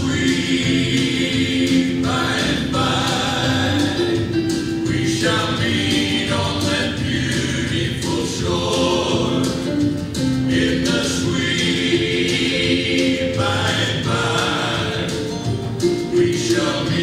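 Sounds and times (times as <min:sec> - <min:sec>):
choir singing a gospel hymn: 0:00.0 - 0:17.0.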